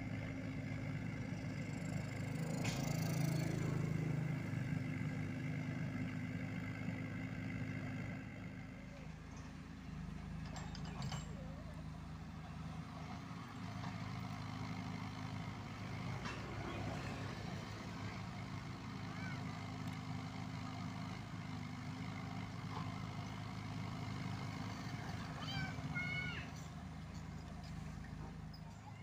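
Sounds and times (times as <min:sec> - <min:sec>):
mini excavator diesel engine: 0:00.0 - 0:29.0.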